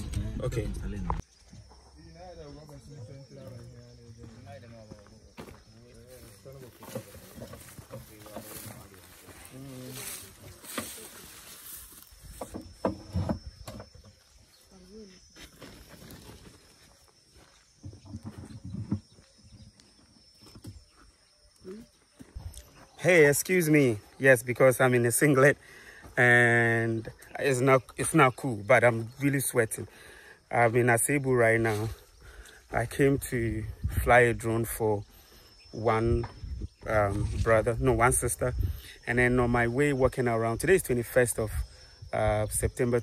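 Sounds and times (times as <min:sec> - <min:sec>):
faint distant voices: 0:02.0 - 0:12.0.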